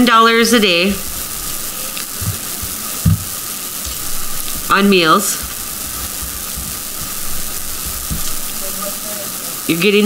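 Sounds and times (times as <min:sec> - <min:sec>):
background recording hiss: 0:00.0 - 0:10.0
soft low rumbles: 0:00.6 - 0:08.9.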